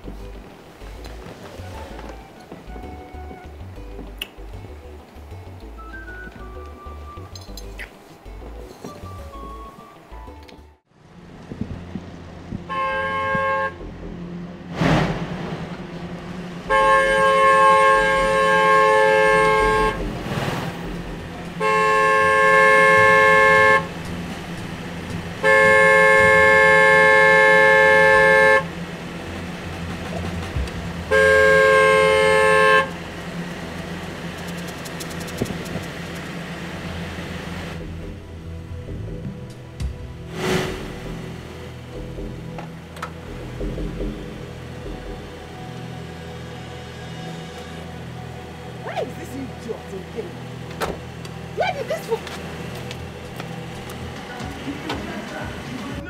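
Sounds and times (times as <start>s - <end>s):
car horn honking: 12.6s - 14.0s, 16.7s - 20.1s, 21.6s - 24.0s, 25.4s - 28.8s, 31.1s - 33.0s
car engine idling: 15.3s - 46.8s, 47.8s - 56.0s.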